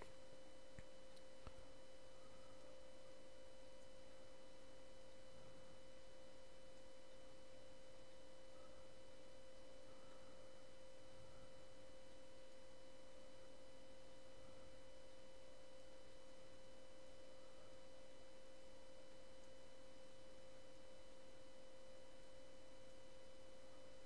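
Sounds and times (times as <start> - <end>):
electrical whine: 0.0 - 24.0.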